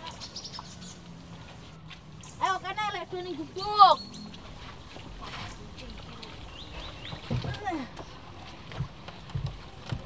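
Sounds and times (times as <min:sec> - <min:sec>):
birds chirping: 0:00.0 - 0:09.2.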